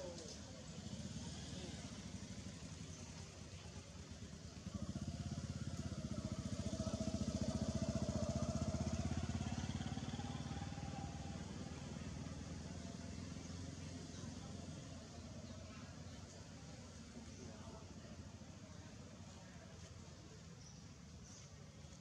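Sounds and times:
small engine passing by: 0:00.0 - 0:22.0.

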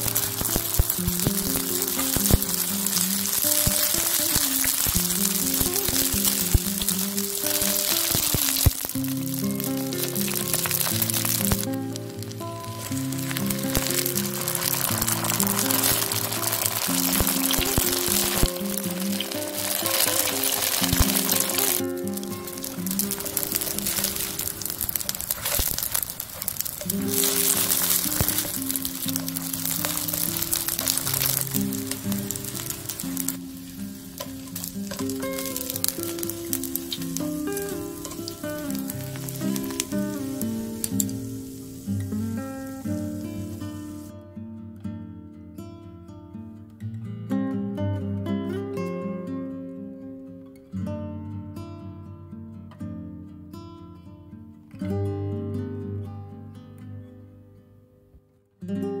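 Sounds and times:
food sizzling in oil: 0:00.0 - 0:44.1.

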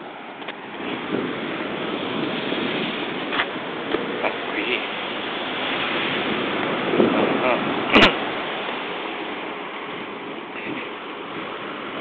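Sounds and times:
street traffic: 0:00.0 - 0:12.0
wind on microphone: 0:00.0 - 0:12.0.

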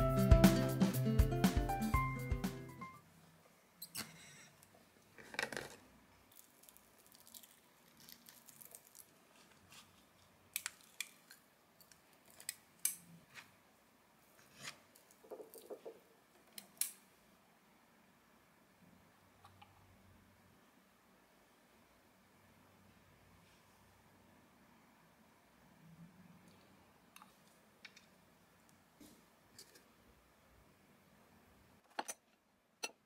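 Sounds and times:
background music: 0:00.0 - 0:03.0.

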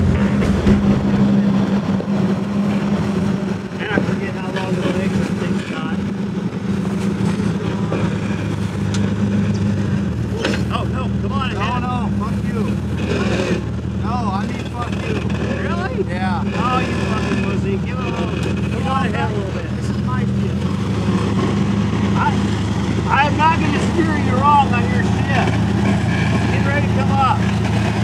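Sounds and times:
sharp knocks: 0:00.0 - 0:02.2
car engine running at low revs: 0:00.0 - 0:28.0.

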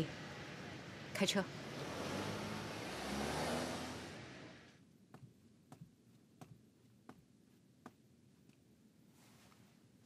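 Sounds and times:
car pulling away: 0:00.1 - 0:04.8.

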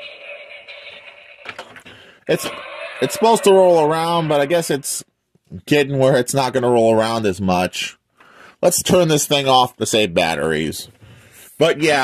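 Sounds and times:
toy electric motor whirring: 0:00.0 - 0:01.8, 0:02.4 - 0:03.7.

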